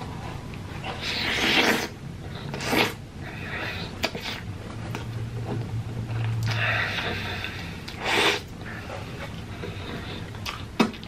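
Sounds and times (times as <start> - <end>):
low steady hum: 0.0 - 11.0
person chewing and smacking: 10.3 - 11.0.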